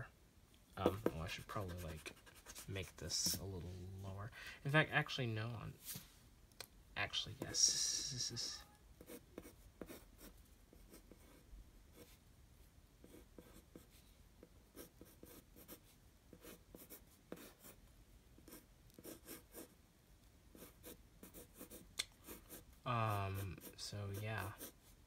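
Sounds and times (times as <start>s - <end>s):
pencil scratching on paper: 0.9s - 3.4s, 9.0s - 12.2s, 13.0s - 14.0s, 14.8s - 17.8s, 18.4s - 19.7s, 20.5s - 24.9s.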